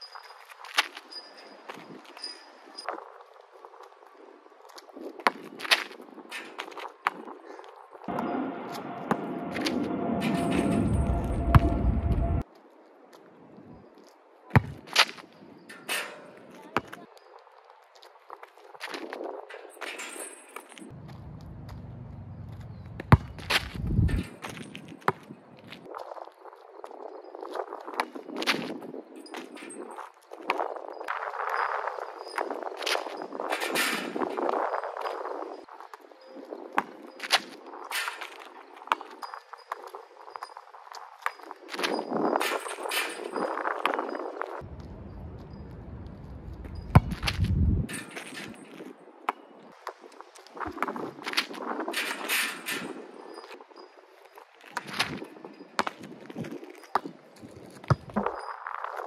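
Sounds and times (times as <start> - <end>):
wind rumble on microphone: 2.8 - 12.5, 20.9 - 38.0, 39.2 - 49.1, 49.7 - 54.0
basketball bouncing on asphalt: 4.7 - 6.0, 8.1 - 9.7, 14.5 - 15.2, 16.6 - 17.0, 20.9 - 25.3, 38.1 - 39.9, 46.4 - 47.8, 55.8 - 58.5.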